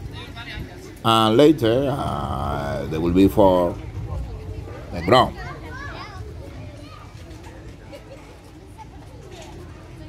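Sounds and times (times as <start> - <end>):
distant children and people talking: 0.0 - 10.0
low rumble: 1.8 - 7.4.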